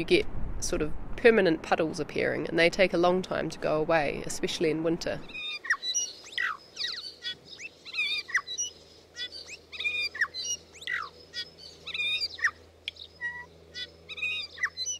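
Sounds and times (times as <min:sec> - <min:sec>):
faint low hum: 0:00.0 - 0:14.9
birds chirping: 0:05.2 - 0:14.9.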